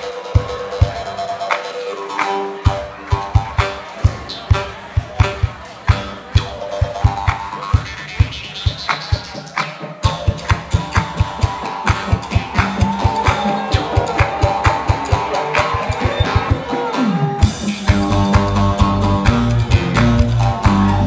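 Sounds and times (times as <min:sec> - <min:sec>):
banjo picking: 0:00.0 - 0:21.0.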